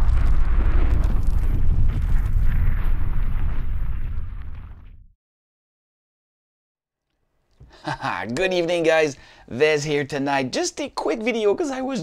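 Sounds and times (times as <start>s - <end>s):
deep rumble: 0.0s - 5.1s.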